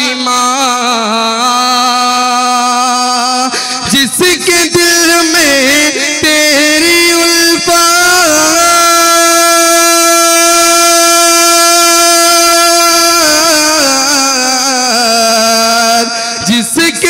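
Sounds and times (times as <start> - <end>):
man singing unaccompanied: 0.0 - 17.0.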